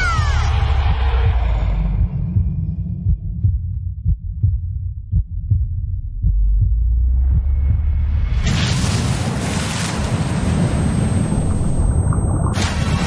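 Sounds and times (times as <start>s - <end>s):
heartbeat thumps: 0.0s - 8.4s
steady low rumble: 0.1s - 13.0s.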